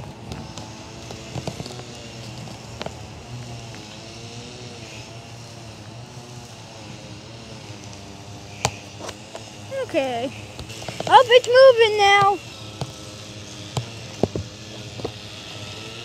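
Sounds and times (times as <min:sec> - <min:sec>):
low engine hum: 0:00.0 - 0:16.0.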